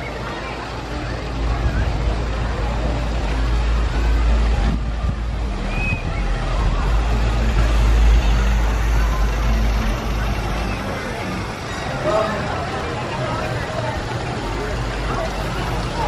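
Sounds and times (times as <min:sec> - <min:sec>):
distant crowd chatter: 0:00.0 - 0:16.0
deep rumble: 0:01.4 - 0:11.2.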